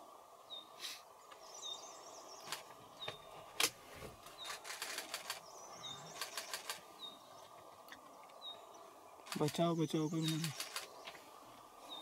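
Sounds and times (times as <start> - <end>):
outdoor background hiss: 0.0 - 12.0
small bird calls: 0.4 - 3.5, 4.2 - 12.0
sharp bird ticks: 4.4 - 5.5, 6.1 - 6.8, 9.2 - 11.2.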